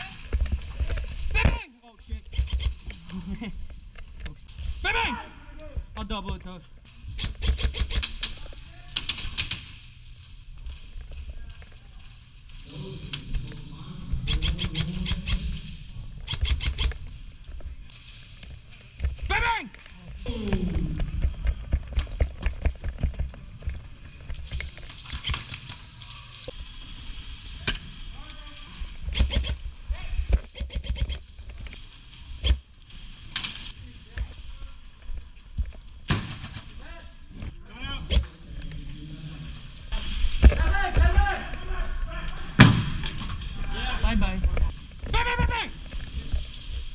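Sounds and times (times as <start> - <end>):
airsoft guns firing: 7.1 - 9.8, 14.2 - 15.6, 36.1 - 36.8
footsteps: 9.5 - 46.9.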